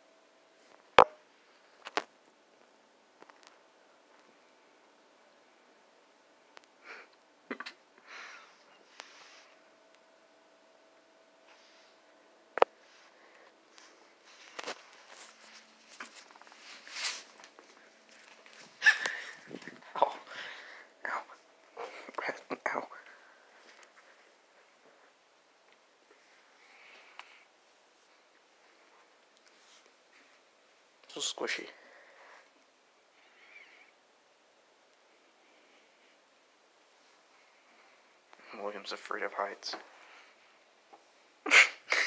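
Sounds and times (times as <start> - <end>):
person sneezing: 18.8 - 19.4, 41.5 - 42.0
person whispering: 21.0 - 23.2.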